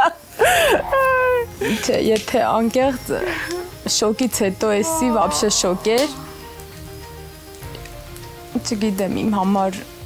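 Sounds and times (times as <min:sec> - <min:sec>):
soft background music: 0:00.0 - 0:10.0
steady hiss: 0:00.0 - 0:10.0
woman speaking: 0:04.3 - 0:06.4.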